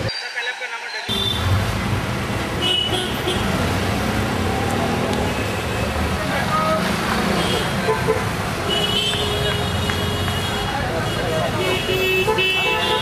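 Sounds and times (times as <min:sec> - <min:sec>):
road traffic: 0:00.0 - 0:13.0
voices of passers-by: 0:00.0 - 0:13.0.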